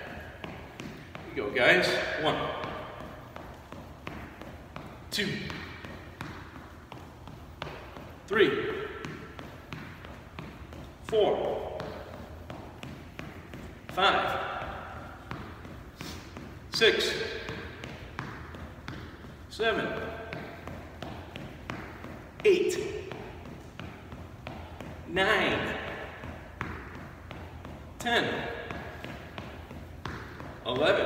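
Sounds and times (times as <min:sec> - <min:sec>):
jogging footfalls on wooden floor: 0:00.1 - 0:31.0.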